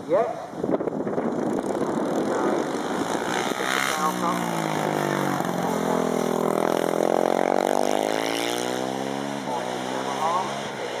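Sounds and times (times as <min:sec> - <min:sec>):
motorcycle accelerating past: 0:01.2 - 0:11.0.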